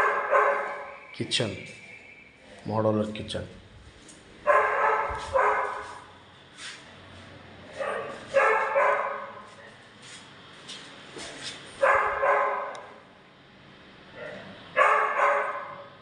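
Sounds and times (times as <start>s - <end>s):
dog barking: 0.0s - 1.0s, 4.4s - 6.1s, 7.8s - 9.5s, 11.8s - 12.9s, 14.1s - 15.9s.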